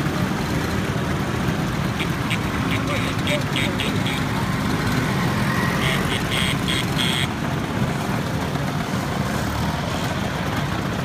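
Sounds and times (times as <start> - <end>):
scooter engines running: 0.0 - 11.0
short high-pitched sounds: 2.0 - 4.4, 5.6 - 7.3.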